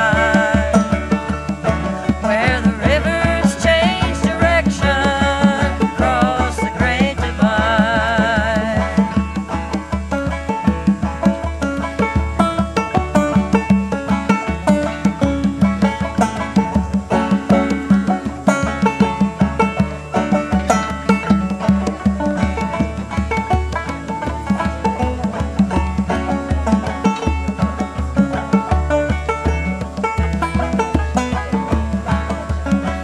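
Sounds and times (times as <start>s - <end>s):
banjo picking: 0.0s - 33.0s
string band playing: 0.0s - 33.0s.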